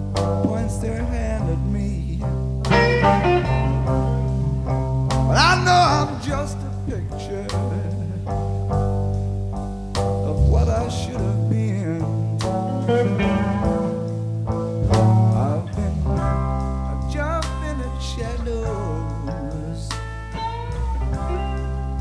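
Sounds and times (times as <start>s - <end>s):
bass guitar: 0.0s - 22.0s
drums: 0.0s - 22.0s
electric lead guitar bent notes: 0.0s - 22.0s.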